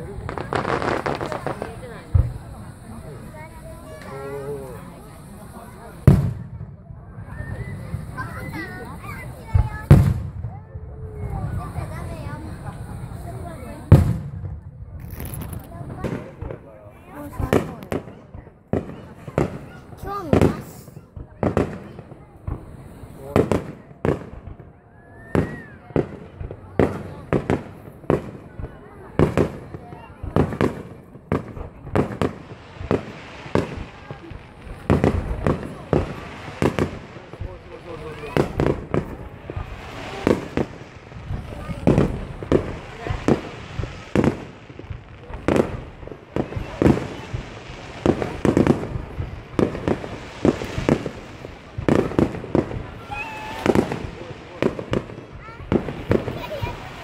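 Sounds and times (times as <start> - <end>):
firework shells bursting: 15.0 - 16.6, 30.3 - 57.0.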